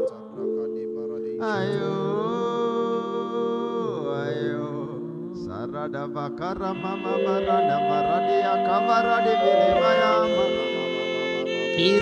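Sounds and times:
man singing into microphone: 0:00.0 - 0:12.0
sustained keyboard chords: 0:00.0 - 0:12.0.

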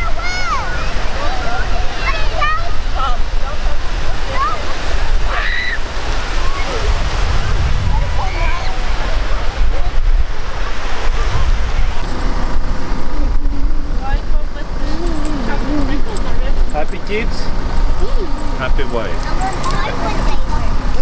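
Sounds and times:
indistinct voices: 0:00.0 - 0:21.0
sea surf: 0:00.0 - 0:21.0
wind buffeting microphone: 0:00.0 - 0:21.0.

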